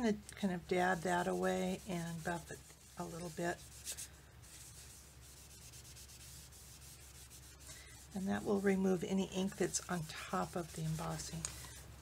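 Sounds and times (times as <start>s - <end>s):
tissue rubbing on cardstock: 0.6s - 12.0s.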